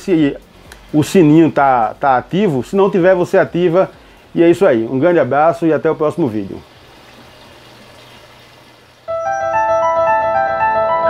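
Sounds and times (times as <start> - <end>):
running water: 1.2 - 9.1.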